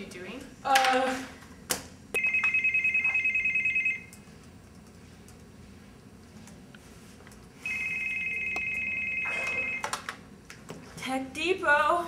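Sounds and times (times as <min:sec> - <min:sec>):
electronic telephone ringing: 0:02.2 - 0:04.1, 0:07.6 - 0:10.0.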